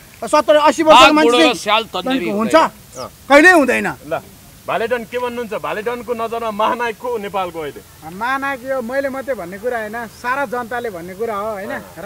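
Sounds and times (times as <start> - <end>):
man talking animatedly: 0.2 - 12.0.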